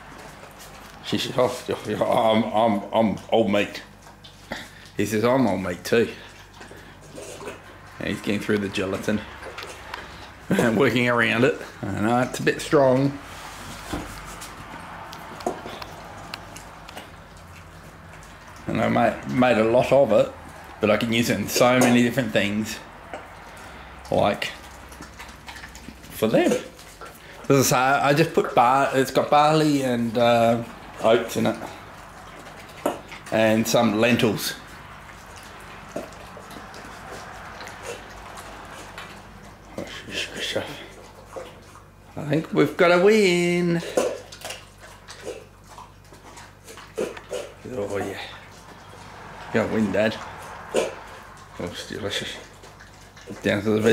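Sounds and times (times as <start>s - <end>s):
dog chewing from food bowl: 0.0s - 53.9s.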